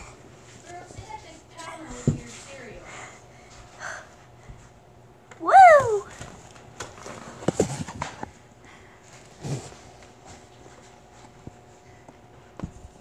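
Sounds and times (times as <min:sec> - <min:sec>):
soft thumps against wall and floor: 0:00.9 - 0:02.4.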